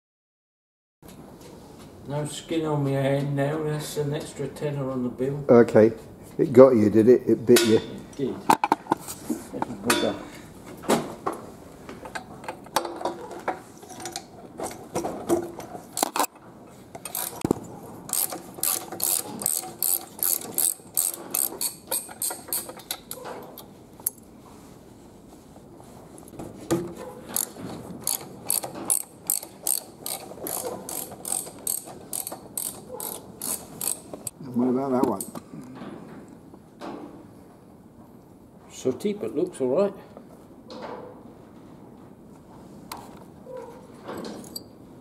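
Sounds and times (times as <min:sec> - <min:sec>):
ratchet wrench clicking: 0:17.0 - 0:17.5, 0:18.1 - 0:23.2, 0:27.3 - 0:34.3.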